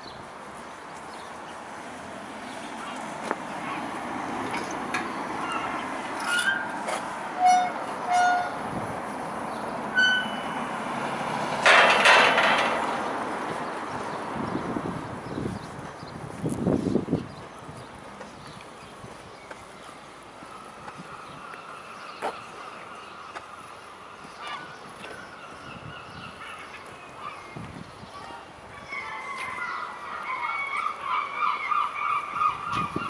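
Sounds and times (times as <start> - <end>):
street ambience: 0.0 - 33.0
bird calls: 17.2 - 33.0.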